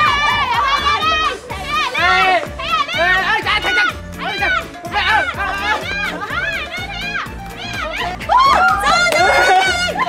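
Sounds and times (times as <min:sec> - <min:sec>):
background music with a beat: 0:00.0 - 0:10.0
people yelling and squealing: 0:00.0 - 0:10.0.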